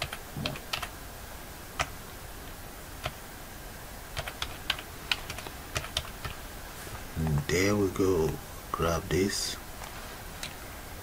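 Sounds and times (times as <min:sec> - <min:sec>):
keyboard typing: 0:00.0 - 0:00.9, 0:04.2 - 0:06.4.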